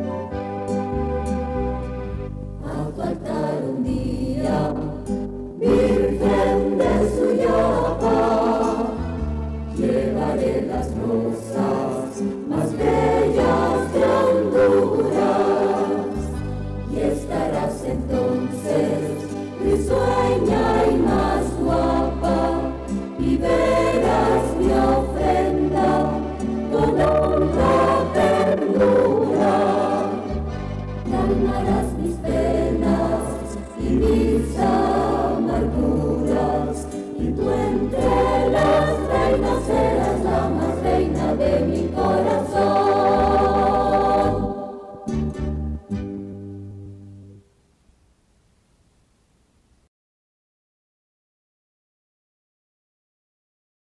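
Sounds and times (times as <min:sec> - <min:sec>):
choir singing a hymn: 0:02.6 - 0:45.8.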